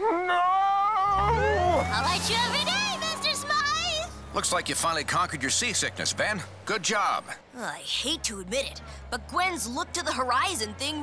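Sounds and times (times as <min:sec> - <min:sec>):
car engine starting: 0:01.0 - 0:07.4.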